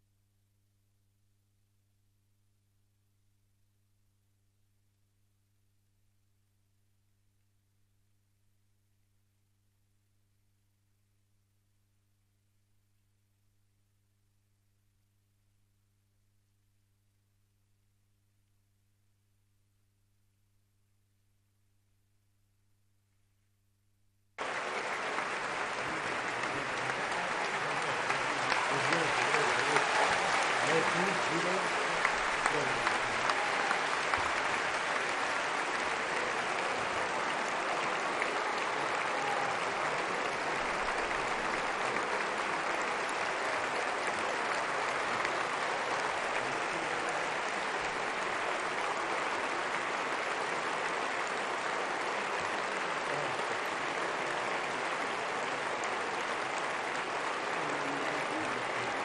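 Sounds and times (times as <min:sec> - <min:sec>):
crowd applauding: 0:24.4 - 0:59.0.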